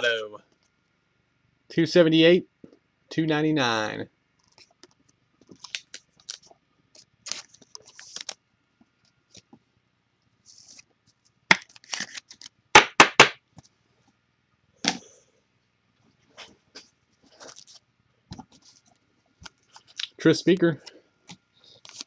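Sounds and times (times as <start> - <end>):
cards and foil packs rustling: 5.5 - 8.4, 10.5 - 12.6, 17.2 - 17.8, 18.4 - 21.0, 21.6 - 22.0
sharp knocks on tabletop: 12.8 - 13.4.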